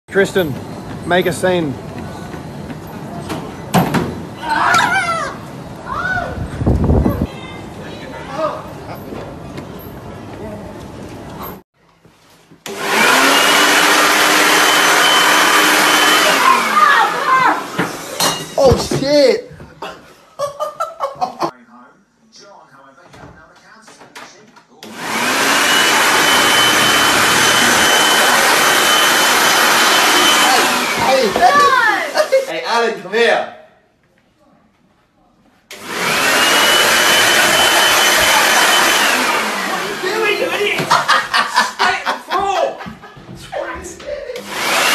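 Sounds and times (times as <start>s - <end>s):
gym background noise: 0.1s - 11.6s
leaf blower whining: 12.6s - 18.2s, 24.8s - 32.2s, 35.7s - 40.8s, 44.4s - 44.9s.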